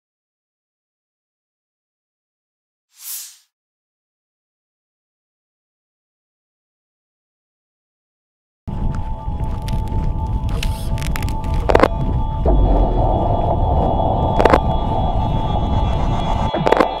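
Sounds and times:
deep rumbling drone: 8.7s - 17.0s
held tone: 11.2s - 17.0s.

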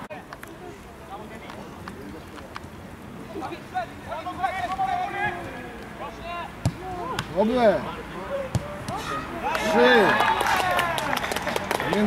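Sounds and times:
football being kicked: 8.5s - 9.0s
men shouting: 8.9s - 11.1s.

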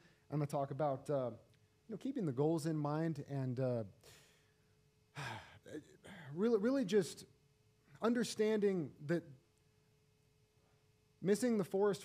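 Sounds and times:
man sighing: 5.2s - 6.3s.

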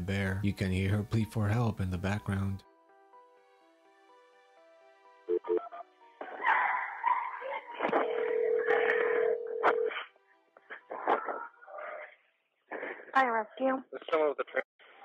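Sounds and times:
muffled phone line noise: 7.8s - 9.9s
phone dialing sounds: 8.0s - 9.9s
person answering phone: 8.0s - 10.0s.

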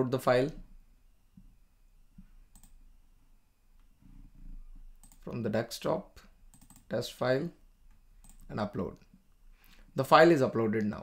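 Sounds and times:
faint computer mouse clicks: 2.2s - 2.8s, 5.0s - 5.2s, 6.5s - 6.9s, 7.9s - 9.1s.

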